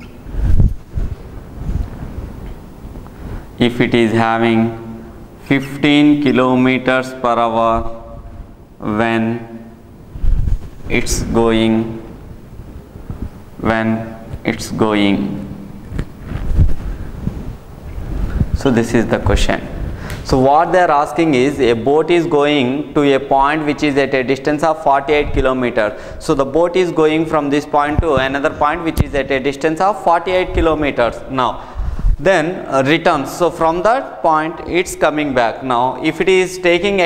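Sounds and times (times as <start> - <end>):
wind rumbling on microphone: 0.0 - 3.6, 7.7 - 8.8, 10.0 - 13.6, 15.7 - 20.1, 31.7 - 32.3
low rumbling: 7.6 - 21.8.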